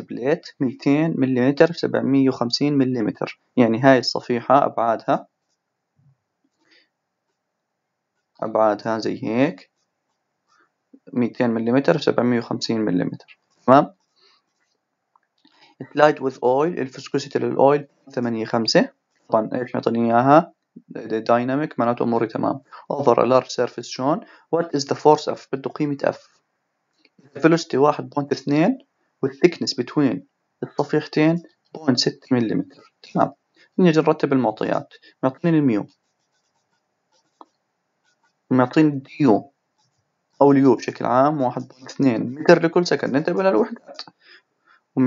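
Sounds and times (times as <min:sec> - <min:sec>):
person speaking: 0:00.0 - 0:05.2, 0:08.4 - 0:09.6, 0:11.0 - 0:13.9, 0:15.7 - 0:26.2, 0:27.3 - 0:35.9, 0:38.5 - 0:39.4, 0:40.4 - 0:44.2
stylus scratching on tablet: 0:30.7 - 0:38.5, 0:39.8 - 0:44.2.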